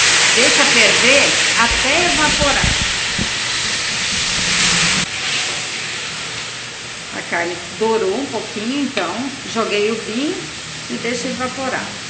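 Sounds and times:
wine sizzling in a pot: 0:00.0 - 0:12.0.

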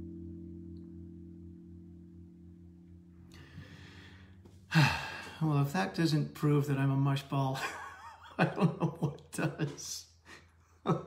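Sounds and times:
tapped string chord ringing: 0:00.0 - 0:07.5
person breathing: 0:03.3 - 0:05.5
loud sigh: 0:03.4 - 0:05.5
person speaking: 0:04.7 - 0:10.3.

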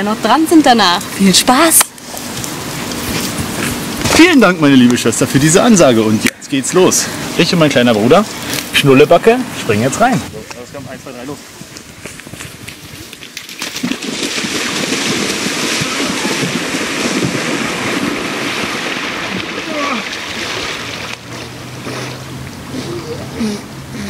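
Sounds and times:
people wading and splashing water: 0:11.6 - 0:24.0.

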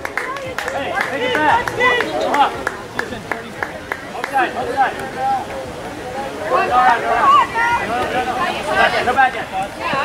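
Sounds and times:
voices calling out and chattering: 0:00.0 - 0:10.0.

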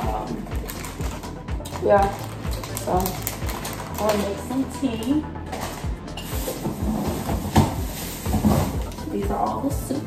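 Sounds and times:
plastic bag rustling: 0:00.4 - 0:09.4.

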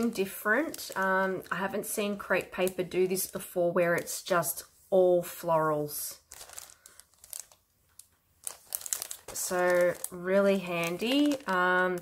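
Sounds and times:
plastic packaging crinkling: 0:00.0 - 0:04.3, 0:06.1 - 0:12.0.

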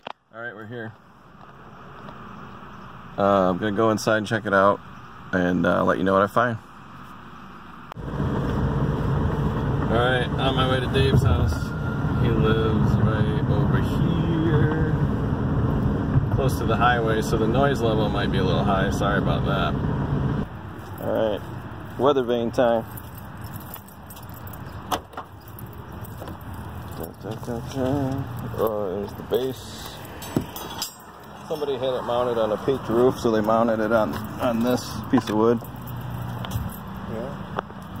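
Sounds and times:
distant highway traffic drone: 0:00.0 - 0:38.0
road and engine rumble in car: 0:00.0 - 0:38.0
faint car interior hum: 0:00.3 - 0:37.4.

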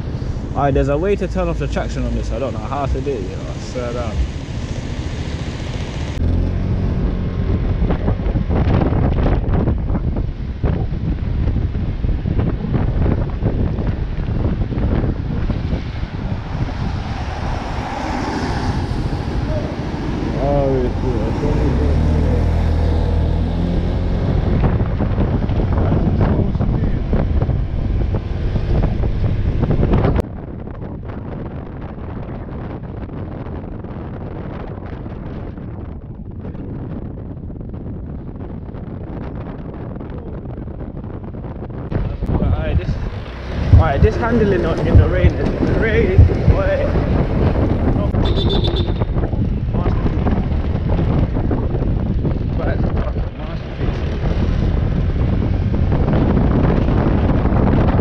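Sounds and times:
tyres on wet road: 0:00.0 - 0:09.3, 0:13.0 - 0:30.2, 0:41.9 - 0:58.0
wind rush on microphone: 0:00.0 - 0:58.0
scooter engine hum: 0:42.8 - 0:58.0.

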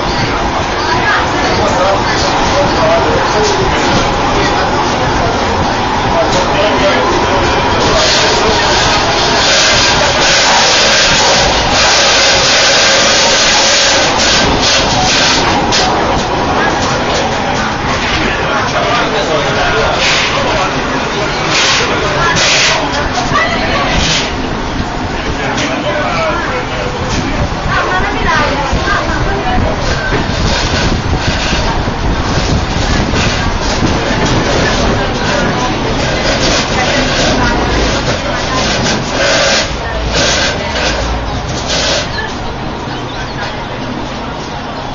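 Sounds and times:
funicular car rumble: 0:00.0 - 0:44.9
people talking: 0:00.0 - 0:44.9
steady rushing noise: 0:00.0 - 0:44.9.

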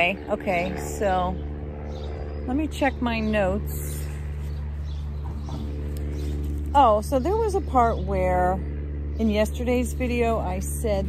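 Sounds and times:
steady low motor hum: 0:00.0 - 0:11.0.

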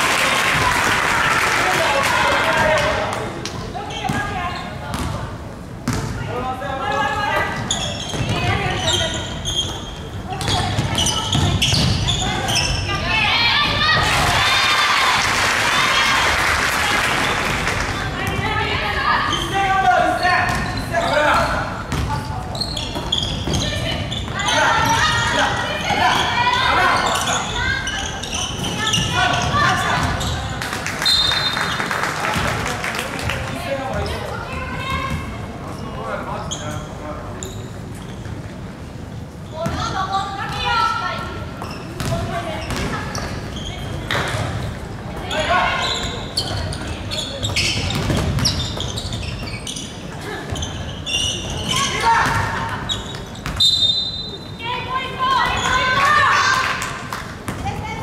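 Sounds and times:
basketball bouncing on wooden court: 0:04.0 - 0:05.2, 0:05.8 - 0:06.1, 0:08.1 - 0:08.6, 0:10.3 - 0:12.4, 0:20.5 - 0:20.7, 0:21.9 - 0:22.3, 0:41.6 - 0:43.3, 0:47.4 - 0:49.4.

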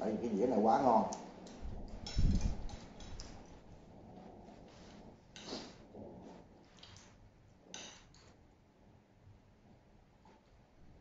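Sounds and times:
chopsticks and spoon on plates: 0:00.8 - 0:08.5.

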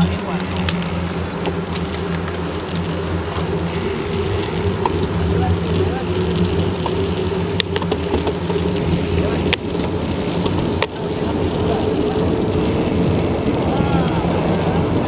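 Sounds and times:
bicycle tyres on asphalt: 0:00.0 - 0:15.0
wind on microphone: 0:00.0 - 0:15.0.

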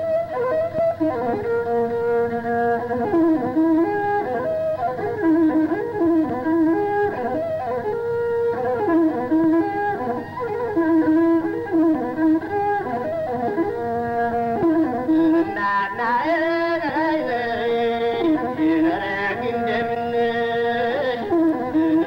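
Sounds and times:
one-string bowed fiddle melody: 0:00.0 - 0:22.0.

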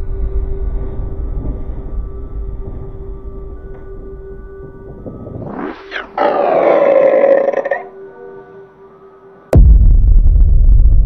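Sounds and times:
ghost growling roar: 0:05.3 - 0:07.9.

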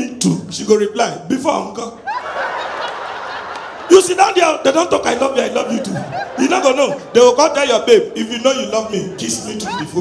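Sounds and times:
audience laughing: 0:02.0 - 0:10.0.

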